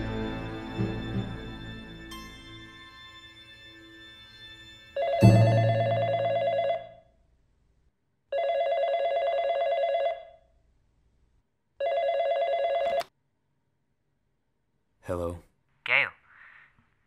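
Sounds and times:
telephone electronic trilling ring: 4.5 - 7.0, 8.4 - 10.3.

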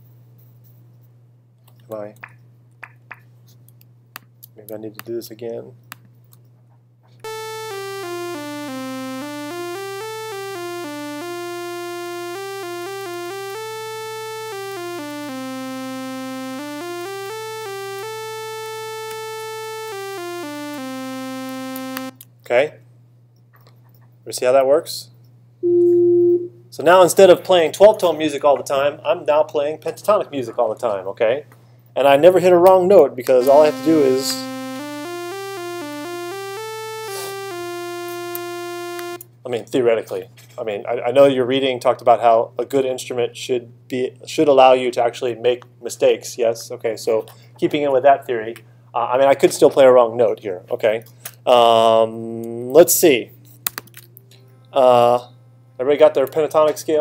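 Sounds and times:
sawtooth synthesizer notes: 7.3 - 22.2, 33.4 - 39.2.

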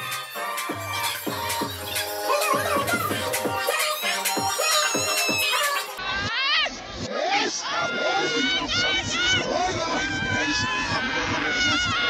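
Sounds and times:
women shrieking and squealing: 4.5 - 12.0.

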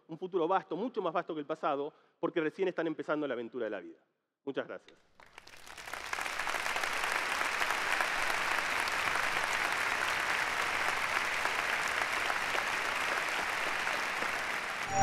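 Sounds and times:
large audience applauding: 5.1 - 15.0.

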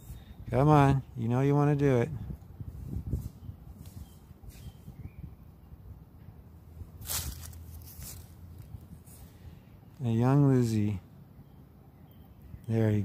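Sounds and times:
short scraping rustle: 2.7 - 4.9, 7.0 - 9.4.

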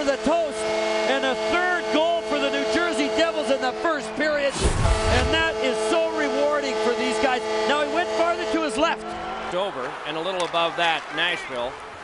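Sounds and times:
goal horn steady tone: 0.0 - 9.5.

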